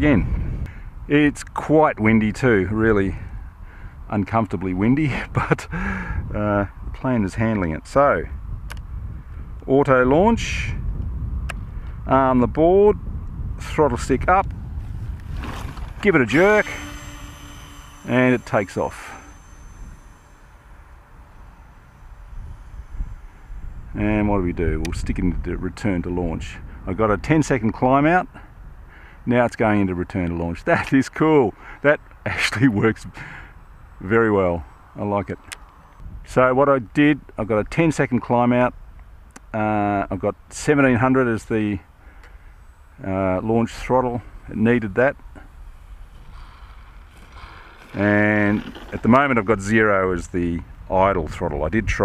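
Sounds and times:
wind buffeting microphone: 0.0s - 1.1s, 2.2s - 27.9s, 45.5s - 52.0s
distant model plane motor whir: 14.2s - 26.8s, 41.9s - 51.1s.

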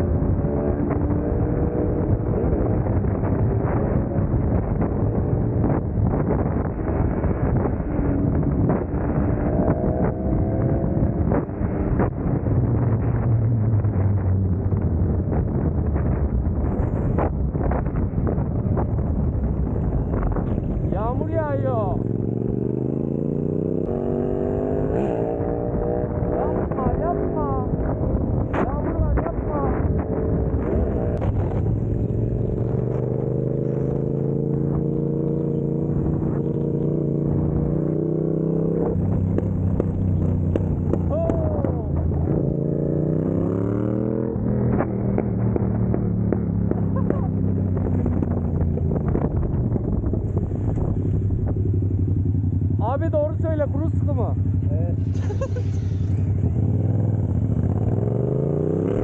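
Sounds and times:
motorcycle engine accelerating: 0.0s - 59.0s.

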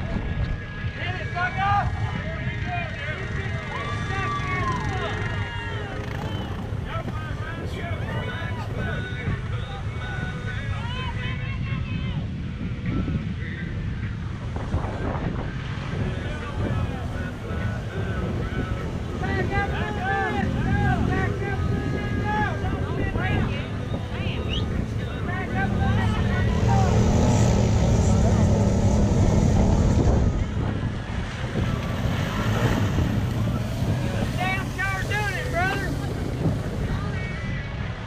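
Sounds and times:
off-road vehicle engines revving: 0.0s - 10.7s, 14.2s - 38.0s
voices calling out: 0.8s - 11.9s, 15.6s - 38.0s.

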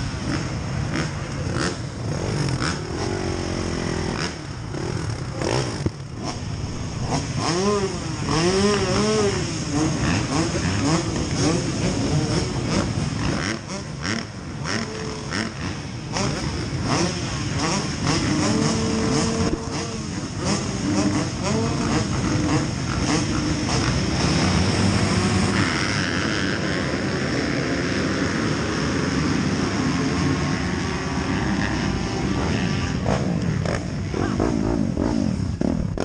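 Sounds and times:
motocross bike engine low revs: 0.0s - 36.0s
people talking: 34.0s - 34.6s.

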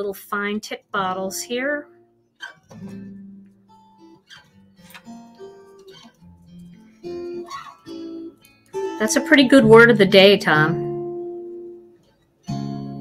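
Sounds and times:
plucked guitar melody: 0.8s - 13.0s.

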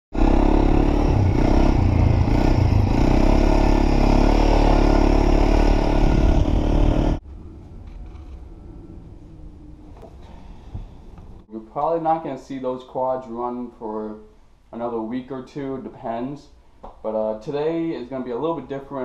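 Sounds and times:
quad engine running: 0.2s - 7.2s.

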